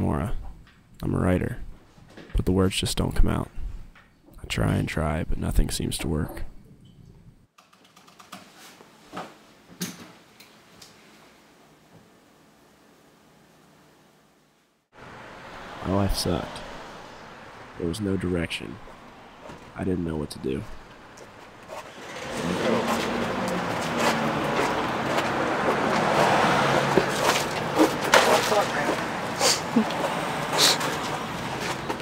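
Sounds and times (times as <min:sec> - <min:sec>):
car driving by: 0:15.0 - 0:19.8, 0:20.8 - 0:32.0.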